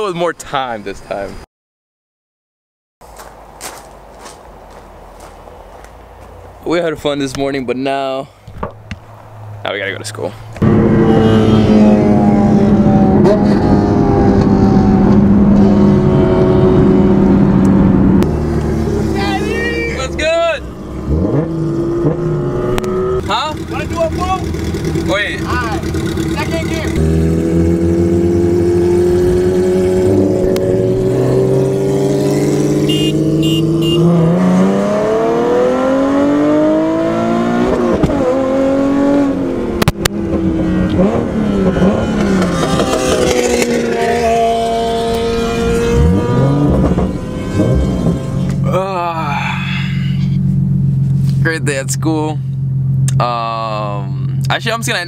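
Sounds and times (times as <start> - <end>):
car engine revving while driving: 10.6 - 49.4.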